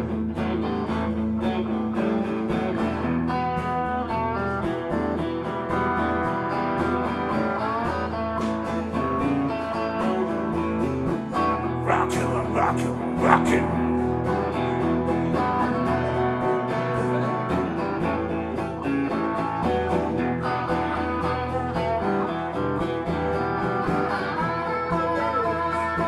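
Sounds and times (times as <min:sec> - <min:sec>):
electric guitars playing blues: 0:00.0 - 0:26.0.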